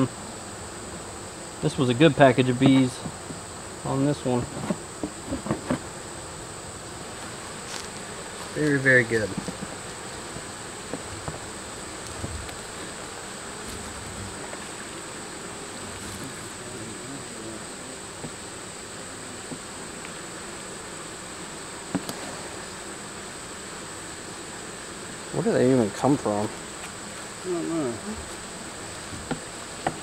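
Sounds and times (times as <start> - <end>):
bees buzzing: 0.0 - 30.0.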